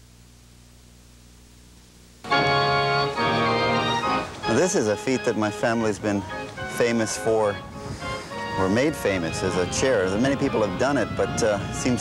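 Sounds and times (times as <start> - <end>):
faint hiss: 0.0 - 12.0
held organ chords: 2.2 - 12.0.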